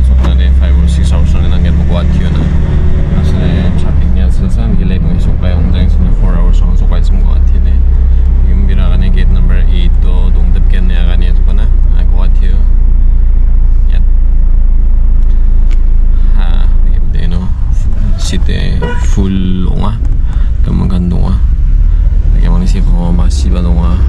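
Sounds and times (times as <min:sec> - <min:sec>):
voices talking: 0:00.0 - 0:12.8, 0:16.2 - 0:21.5, 0:22.2 - 0:24.0
car driving rumble inside cabin: 0:00.0 - 0:24.0.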